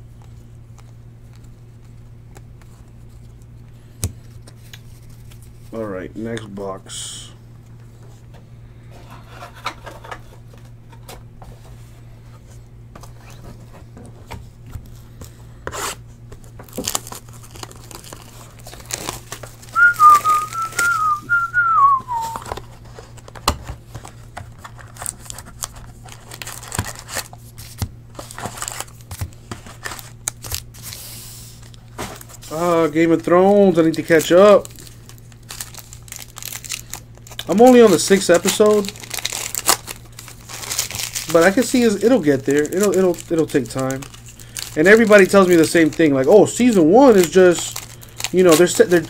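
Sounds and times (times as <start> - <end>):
plastic wrap crinkling and tearing: 15.8 - 31.0, 31.6 - 49.0
person whistling: 19.8 - 22.5.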